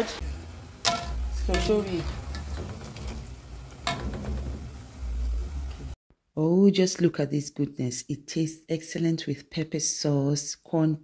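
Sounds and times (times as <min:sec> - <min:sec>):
fritters sizzling in hot oil: 0:00.0 - 0:06.0.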